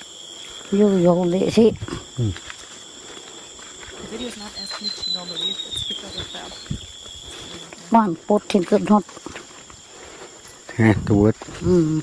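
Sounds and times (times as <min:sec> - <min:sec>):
high insect drone: 0:00.0 - 0:12.0
man talking: 0:02.2 - 0:02.4, 0:10.7 - 0:11.5
footsteps through undergrowth: 0:02.3 - 0:10.7.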